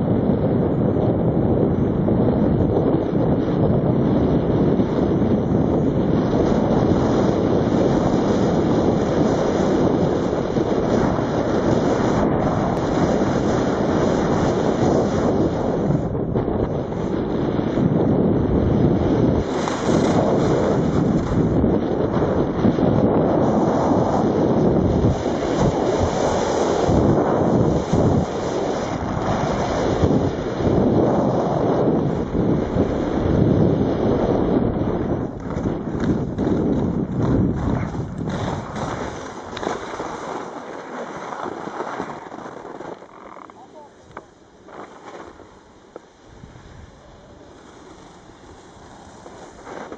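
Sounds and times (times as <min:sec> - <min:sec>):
wind buffeting microphone: 0:00.0 - 0:49.9.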